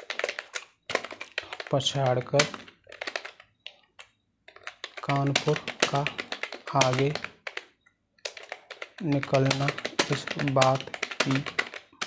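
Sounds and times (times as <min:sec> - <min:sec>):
typing on computer keyboard: 0:00.0 - 0:12.0.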